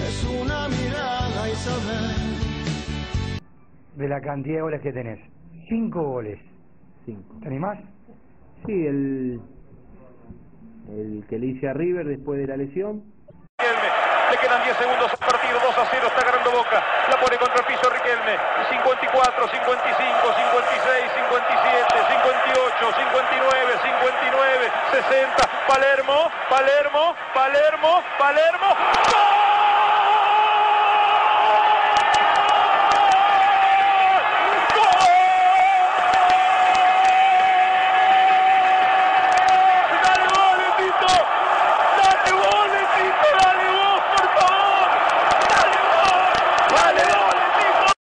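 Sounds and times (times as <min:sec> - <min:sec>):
man commentating: 0:13.6 - 0:29.2, 0:39.4 - 0:48.0
excited shouting voices: 0:13.6 - 0:48.0
stadium crowd noise: 0:13.6 - 0:48.0.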